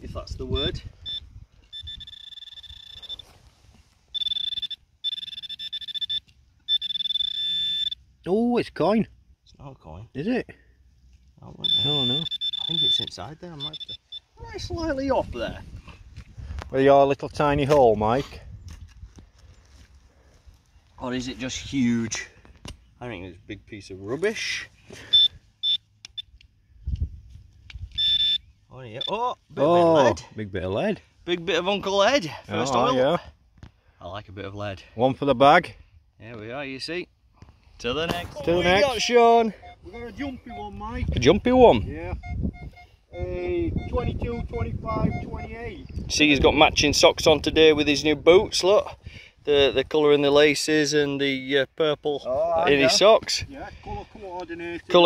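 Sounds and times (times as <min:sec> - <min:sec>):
high-pitched detector alarm tone: 0:00.4 - 0:03.4, 0:04.1 - 0:08.1, 0:11.6 - 0:14.4, 0:25.0 - 0:26.3, 0:27.9 - 0:30.1, 0:38.5 - 0:46.4
soft scuffing of soil: 0:03.0 - 0:04.1, 0:19.0 - 0:21.1.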